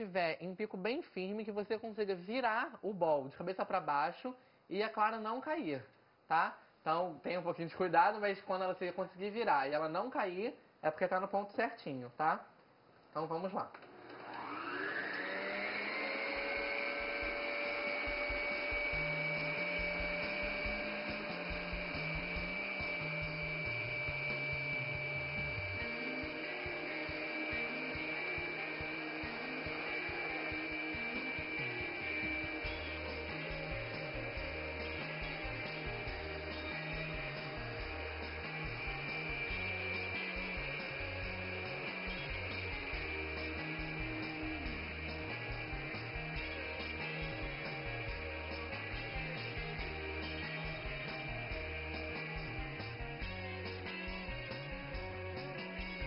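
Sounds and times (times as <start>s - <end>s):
stand mixer motor whining: 13.8s - 56.0s.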